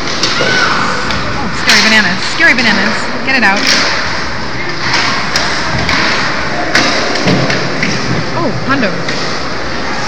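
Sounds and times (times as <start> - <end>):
hockey sticks and puck clacking: 0.0 - 8.3, 9.0 - 9.9.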